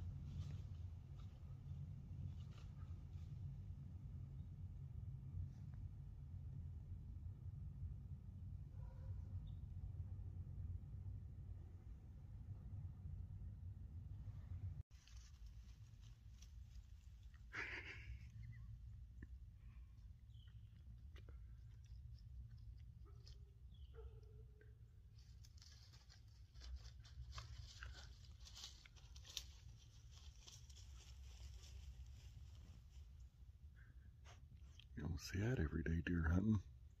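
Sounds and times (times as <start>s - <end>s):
faint low rumble: 0.0s - 37.0s
animal scratching and rustling on bark: 14.9s - 17.8s, 25.2s - 33.0s.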